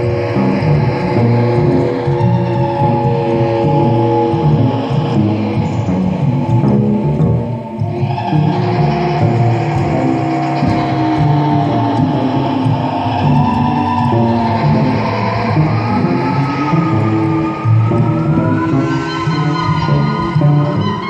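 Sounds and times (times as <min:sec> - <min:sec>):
cello and electronics improvisation: 0:00.0 - 0:21.0
high tone gliding upward: 0:00.0 - 0:21.0.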